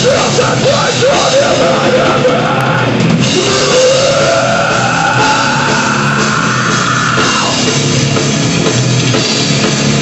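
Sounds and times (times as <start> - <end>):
distorted electric guitars: 0.0 - 10.0
drum kit: 0.0 - 10.0.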